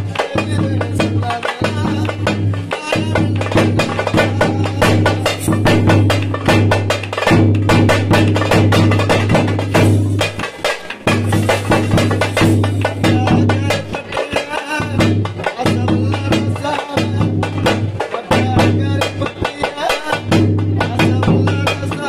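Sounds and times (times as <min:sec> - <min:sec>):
booming bass drum: 0:00.0 - 0:22.0
frame drums beaten fast: 0:00.0 - 0:22.0.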